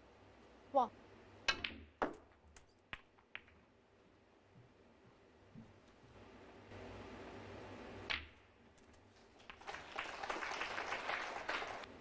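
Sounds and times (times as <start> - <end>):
snooker balls clicking: 1.5 - 3.7, 8.1 - 9.8.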